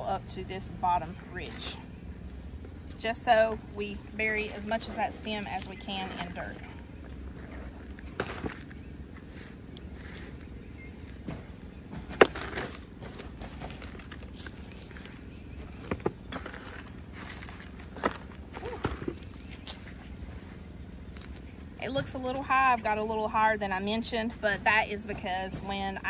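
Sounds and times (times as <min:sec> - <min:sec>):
soil rustling and crumbling: 0:03.0 - 0:23.8.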